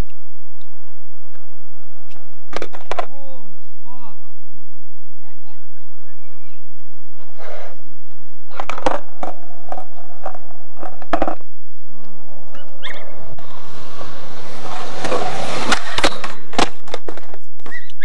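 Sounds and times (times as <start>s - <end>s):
skateboard wheels rolling: 0.0s - 3.2s, 5.9s - 18.0s
skateboard clacks on concrete: 2.5s - 3.1s, 8.5s - 11.4s, 14.9s - 18.0s
skateboard hard impacts: 2.5s - 3.2s, 8.5s - 11.4s, 13.6s - 18.0s.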